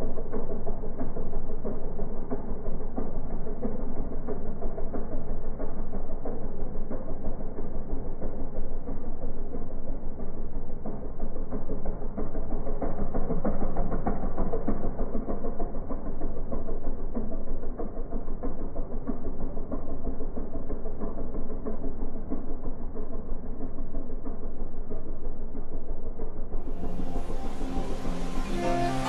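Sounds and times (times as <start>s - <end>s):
small boat motor running: 0.0s - 29.0s.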